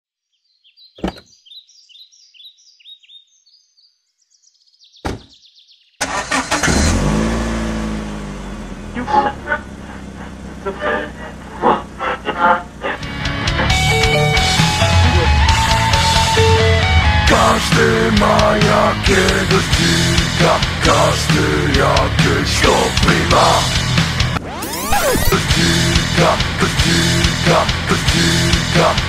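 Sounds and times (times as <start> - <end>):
birds chirping: 0.2 - 6.2
car engine starting and running: 6.0 - 29.0
rock music: 11.9 - 29.0.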